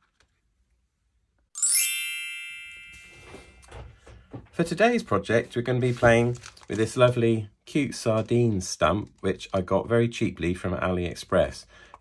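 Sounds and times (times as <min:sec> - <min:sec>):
bright chime: 0:01.6 - 0:03.8.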